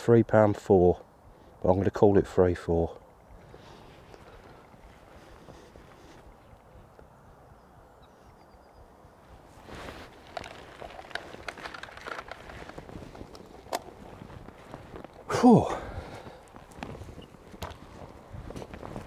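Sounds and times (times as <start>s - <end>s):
faint riverside background: 0.0s - 19.0s
footsteps scuffing on muddy bank: 9.4s - 15.3s, 16.0s - 19.0s.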